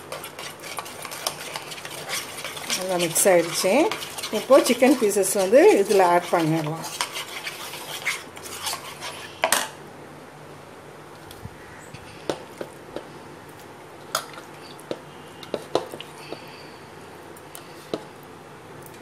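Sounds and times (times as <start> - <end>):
spoon stirring paste in bowl: 0.0 - 9.3, 15.4 - 16.4.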